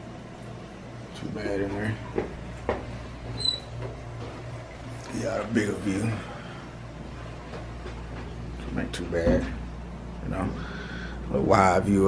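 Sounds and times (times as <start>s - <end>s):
steady low hum: 0.0s - 12.0s
brief high squeak: 3.4s - 3.7s.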